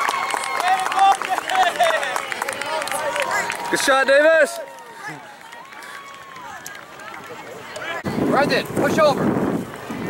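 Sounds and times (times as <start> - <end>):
long drawn-out shout: 0.0 - 6.8.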